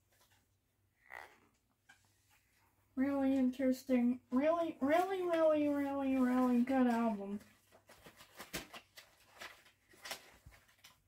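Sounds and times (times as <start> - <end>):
paper booklet rustling: 3.2 - 11.0.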